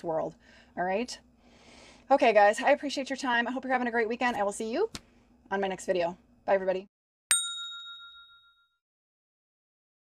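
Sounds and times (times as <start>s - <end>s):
bright chime: 7.3s - 8.8s.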